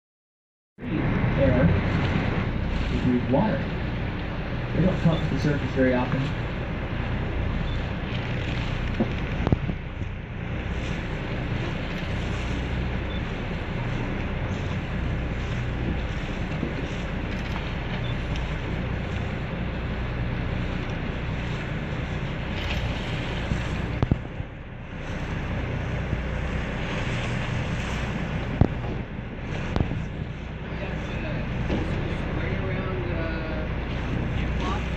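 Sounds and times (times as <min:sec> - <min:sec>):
boat engine droning: 0:00.8 - 0:34.9
wind buffeting microphone: 0:00.8 - 0:34.9.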